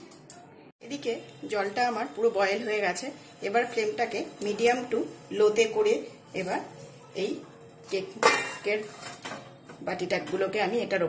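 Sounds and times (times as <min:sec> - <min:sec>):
metal plate clanking on saucepan: 0:08.2 - 0:09.5.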